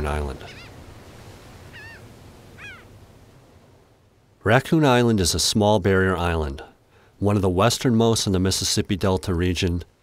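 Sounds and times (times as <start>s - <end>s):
gulls calling: 0.0s - 0.9s, 1.5s - 3.0s
surf washing: 0.0s - 9.7s.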